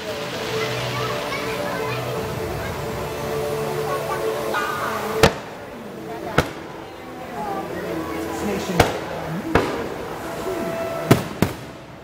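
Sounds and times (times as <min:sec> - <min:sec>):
crowd chatter: 0:00.0 - 0:12.0
fireworks bangs: 0:02.2 - 0:12.0.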